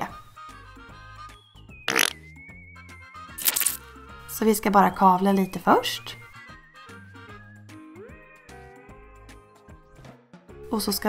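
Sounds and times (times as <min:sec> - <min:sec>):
background music: 0:00.0 - 0:11.0
play dough suction sound: 0:01.9 - 0:02.1, 0:03.4 - 0:03.8.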